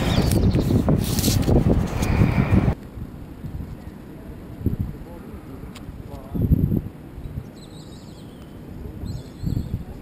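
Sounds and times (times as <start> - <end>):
quiet outdoor background: 0.0 - 10.0
wind buffeting microphone: 0.0 - 10.0.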